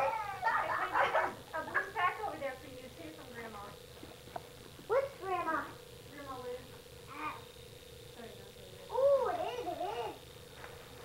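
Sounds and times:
high-pitched wavering cries: 0:00.0 - 0:01.3.

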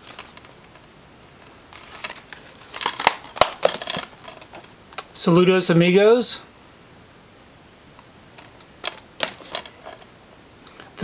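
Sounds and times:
plastic case rustling: 0:00.0 - 0:00.8, 0:01.7 - 0:05.0, 0:08.4 - 0:10.1.

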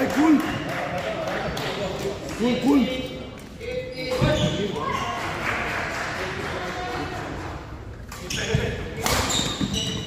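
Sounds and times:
voices echoing in large hall: 0:00.0 - 0:10.0.

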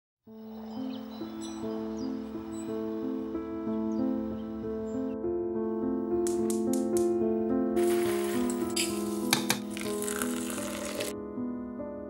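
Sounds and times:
solo piano music: 0:00.3 - 0:12.0
water pouring from kettle: 0:07.8 - 0:11.1.

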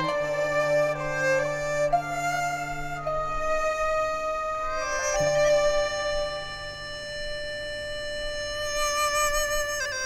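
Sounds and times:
bamboo flute long note: 0:00.0 - 0:10.0
low sustained ensemble note: 0:00.0 - 0:10.0.

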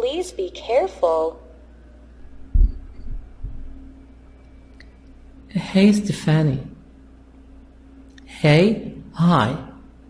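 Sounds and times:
faint steady hum: 0:00.0 - 0:10.0
dull low thumps: 0:02.3 - 0:03.9.

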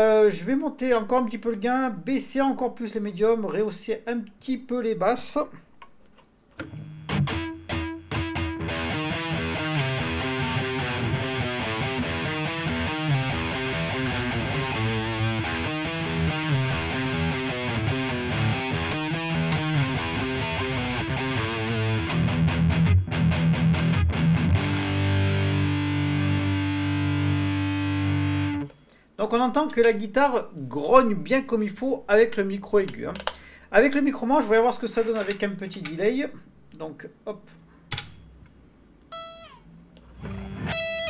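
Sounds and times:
distorted electric guitar metal riffs: 0:06.6 - 0:28.7, 0:40.2 - 0:41.0.

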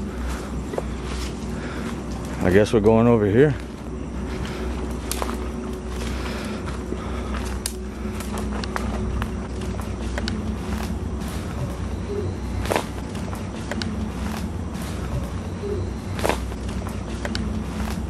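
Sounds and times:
footsteps through dry leaves: 0:00.0 - 0:18.0
low background rumble: 0:00.0 - 0:18.0
twigs snapping: 0:03.6 - 0:11.9, 0:12.5 - 0:15.5, 0:16.1 - 0:18.0.

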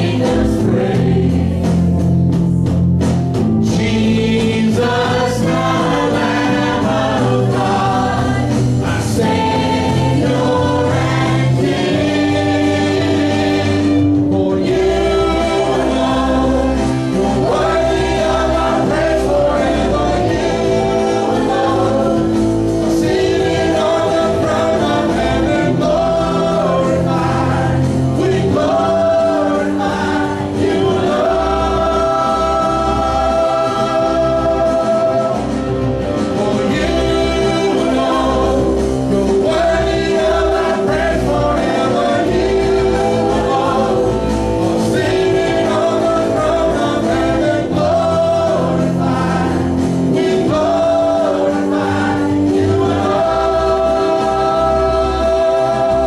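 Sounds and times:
voices singing together: 0:00.0 - 0:02.4, 0:03.4 - 0:56.0
praise band playing gospel song: 0:00.0 - 0:56.0.

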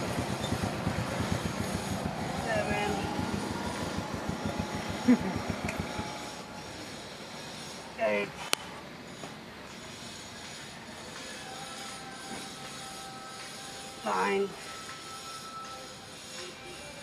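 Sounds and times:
faint voices: 0:00.0 - 0:07.2
fast-pulsing mechanical rumble: 0:00.0 - 0:08.0.

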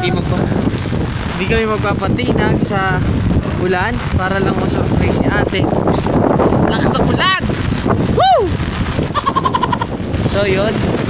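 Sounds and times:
heavy rain: 0:00.0 - 0:11.0
wind on microphone: 0:00.0 - 0:11.0
person exclaiming: 0:08.2 - 0:08.5.

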